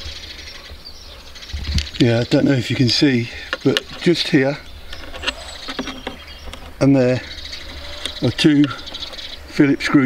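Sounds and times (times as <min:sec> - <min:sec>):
faint bird chirping: 0:00.0 - 0:10.0
wind rumble on microphone: 0:00.8 - 0:02.1.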